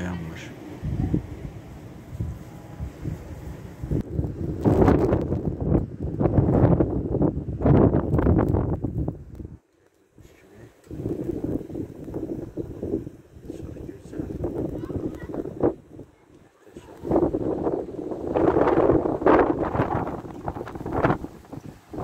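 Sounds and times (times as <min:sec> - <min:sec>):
gusting wind buffeting microphone: 0:00.0 - 0:22.0.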